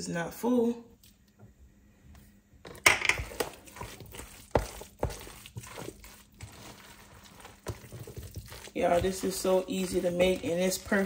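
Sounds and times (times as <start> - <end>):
wet mixing with a spatula: 2.8 - 11.0.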